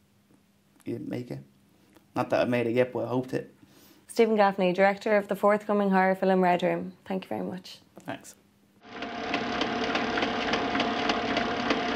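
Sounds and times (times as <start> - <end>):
film projector whirring: 8.8 - 11.9
projector clicking clatter: 8.9 - 11.9.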